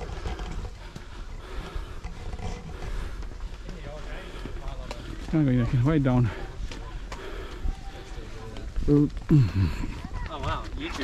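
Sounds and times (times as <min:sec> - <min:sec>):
footsteps on paved path: 0:00.0 - 0:11.0.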